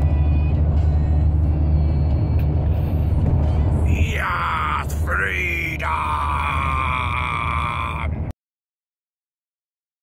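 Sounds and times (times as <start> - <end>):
road and engine rumble: 0.0 - 8.3
person shouting long wordless note: 3.9 - 8.2.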